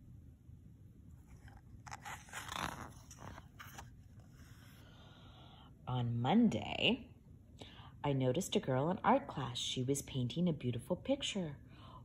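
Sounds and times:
paper page turning: 1.2 - 4.8.

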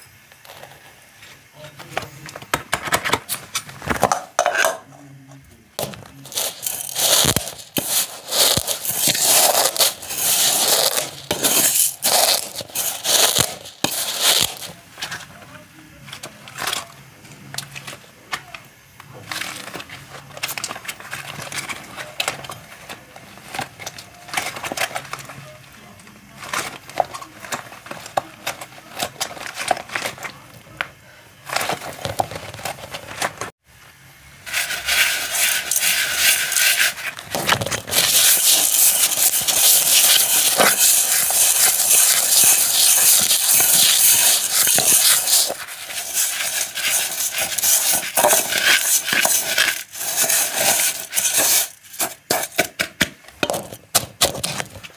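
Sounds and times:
gloved hands kneading dry grains: 6.1 - 14.8, 34.4 - 52.6.

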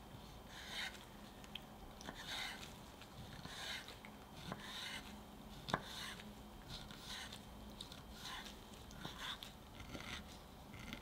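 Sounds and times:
knife cutting soft fruit: 0.5 - 11.0.

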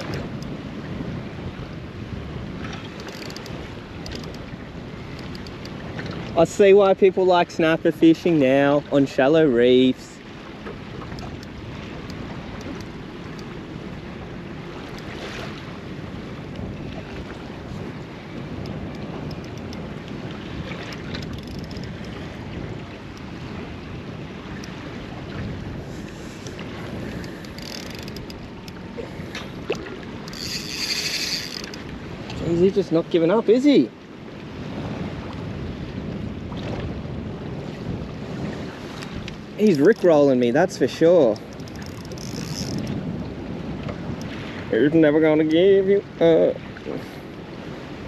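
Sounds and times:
small waves lapping at boat: 0.0 - 48.0
wind buffeting microphone: 0.0 - 48.0
high-pitched whirr: 30.3 - 31.8.

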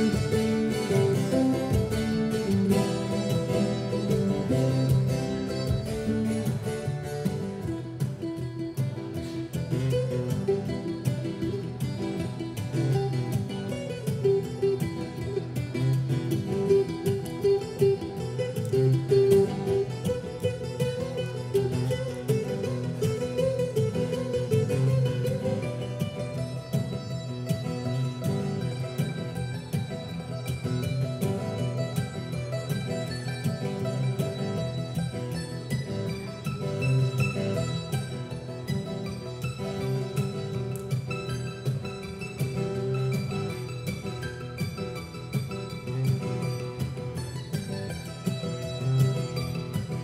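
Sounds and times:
acoustic guitar: 0.0 - 50.0
mandolin: 0.0 - 50.0.

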